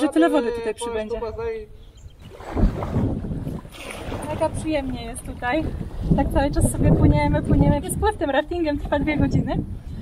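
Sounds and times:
river water around raft: 0:00.0 - 0:10.0
wind rumbling on microphone: 0:00.8 - 0:10.0.

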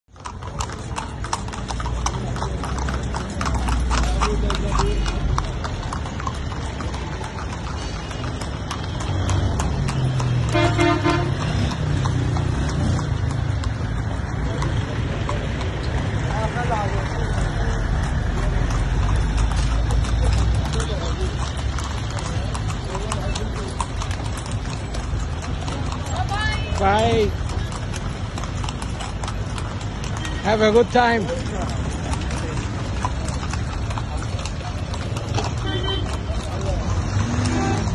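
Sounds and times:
hooves clip-clopping on pavement: 0:00.1 - 0:37.9.

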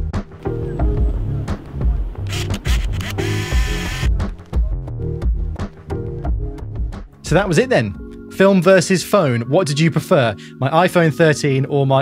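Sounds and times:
background music: 0:00.0 - 0:12.0
camera shutter click: 0:02.3 - 0:04.1
film winding motor whir: 0:02.3 - 0:04.2.

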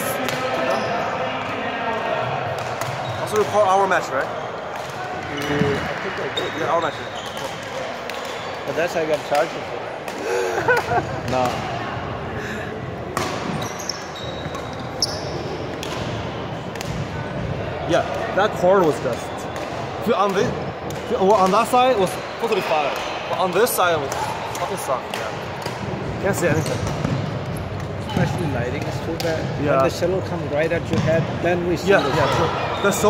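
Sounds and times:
court shoes squeaking: 0:00.0 - 0:01.5, 0:02.2 - 0:10.2, 0:13.0 - 0:17.5, 0:18.1 - 0:33.0
rackets hitting a shuttlecock: 0:02.5 - 0:03.8, 0:13.1 - 0:13.6, 0:15.7 - 0:18.2.

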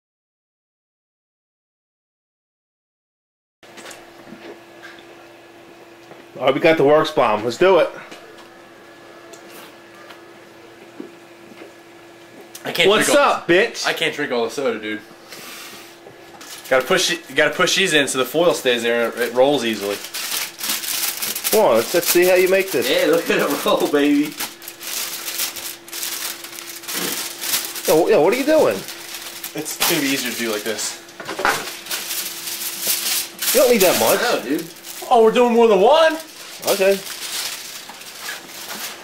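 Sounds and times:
steady electrical hum: 0:03.7 - 0:39.0
aluminium foil crackling: 0:16.4 - 0:39.0
plastic bag crinkling: 0:16.4 - 0:39.0.

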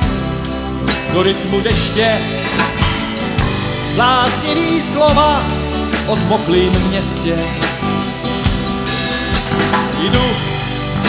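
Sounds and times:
drum kit bass drum and snare: 0:00.0 - 0:11.0
rock band playing: 0:00.0 - 0:11.0.

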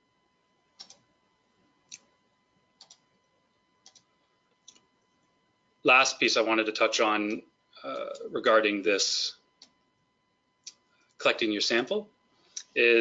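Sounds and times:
faint high-pitched electrical tone: 0:00.0 - 0:13.0.

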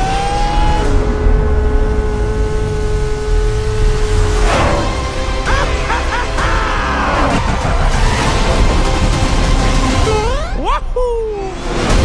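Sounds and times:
kart engine whine: 0:00.0 - 0:08.4
deep engine rumble: 0:00.2 - 0:06.2.

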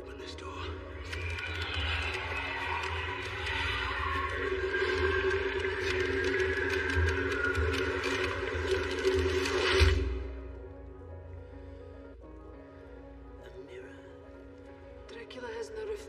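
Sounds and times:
film score music: 0:00.0 - 0:16.0
crackling sparking effects: 0:01.0 - 0:10.5.

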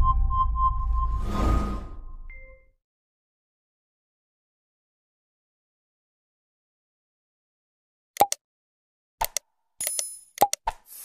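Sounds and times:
deep low rumble: 0:00.0 - 0:02.3
whoosh: 0:00.0 - 0:02.3.

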